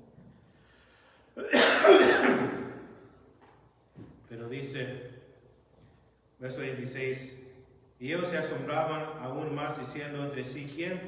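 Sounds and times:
man coughing: 0:01.4 - 0:03.0.

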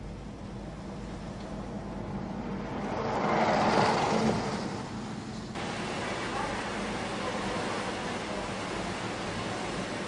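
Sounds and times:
bus driving past: 0:00.8 - 0:10.0.

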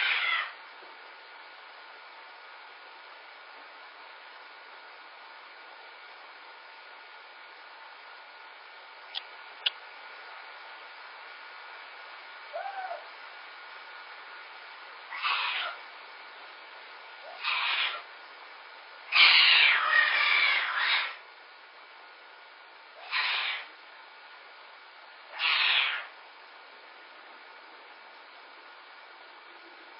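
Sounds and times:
kitten crying: 0:00.0 - 0:00.6, 0:12.5 - 0:13.1, 0:15.1 - 0:15.8, 0:17.3 - 0:18.0, 0:19.1 - 0:21.2, 0:23.0 - 0:23.7, 0:25.3 - 0:26.1.

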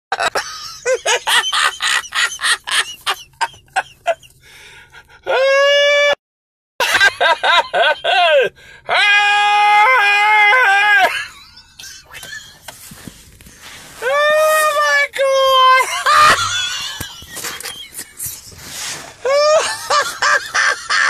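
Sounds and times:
man laughing loudly: 0:00.1 - 0:04.3, 0:06.8 - 0:08.5, 0:10.6 - 0:12.7, 0:15.6 - 0:18.5, 0:19.2 - 0:21.0
man yelling cries: 0:05.3 - 0:06.2, 0:07.4 - 0:11.3, 0:14.0 - 0:16.7, 0:19.2 - 0:21.0.

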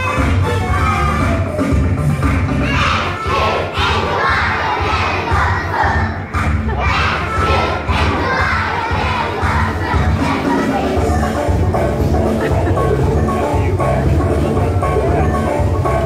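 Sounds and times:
amplified music with heavy bass: 0:00.0 - 0:03.4, 0:04.3 - 0:16.0
children shouting together: 0:02.6 - 0:11.2.

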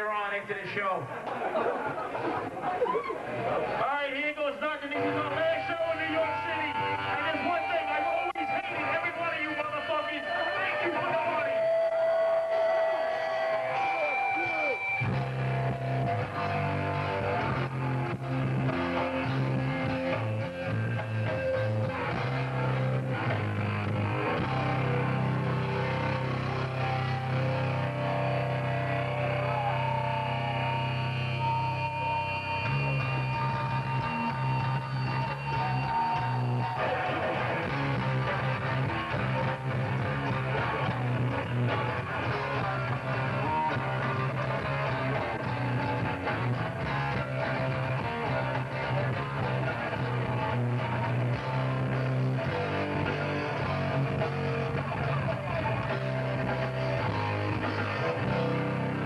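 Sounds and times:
bass guitar: 0:04.8 - 0:59.0
hardcore punk band playing live: 0:05.0 - 0:59.0.

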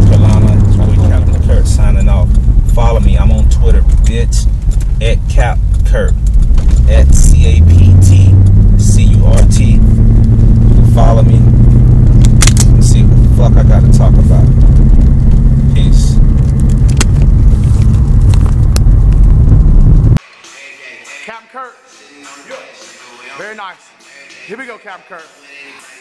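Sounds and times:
car engine and road drone: 0:00.0 - 0:20.2.

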